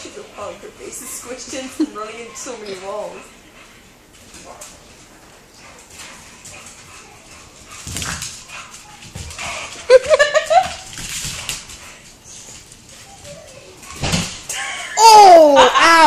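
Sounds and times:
dog paws clicking on hardwood floor: 4.1s - 14.5s.

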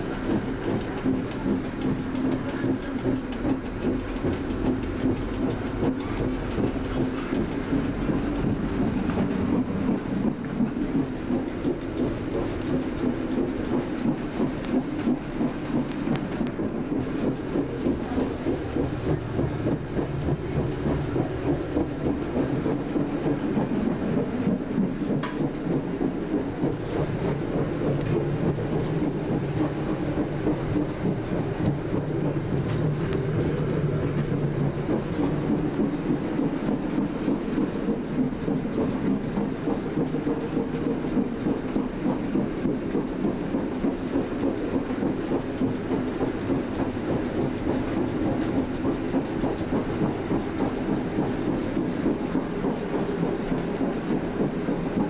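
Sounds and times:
train wheels on rails: 0.0s - 55.0s.

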